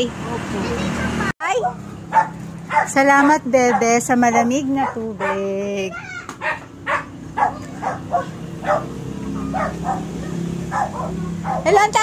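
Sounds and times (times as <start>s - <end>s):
dog barking: 1.5s - 3.0s, 3.6s - 4.1s, 4.8s - 5.6s, 6.4s - 11.8s.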